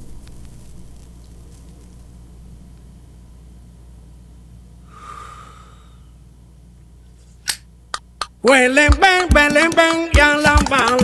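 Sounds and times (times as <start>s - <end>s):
low steady hum: 0.0s - 9.3s
man exhaling breathy puff: 4.9s - 6.2s.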